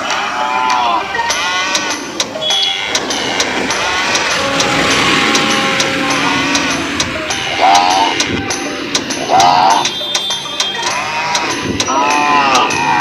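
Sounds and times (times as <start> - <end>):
music with clicking beat: 0.0 - 13.0
road traffic: 0.0 - 13.0.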